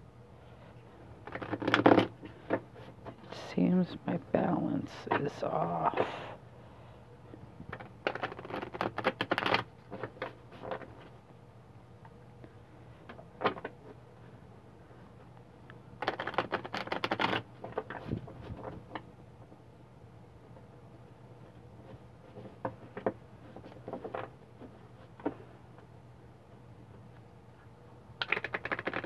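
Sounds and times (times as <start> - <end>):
cards being riffle-shuffled: 1.2 - 2.6, 7.7 - 11.0, 16.0 - 19.0, 28.2 - 29.0.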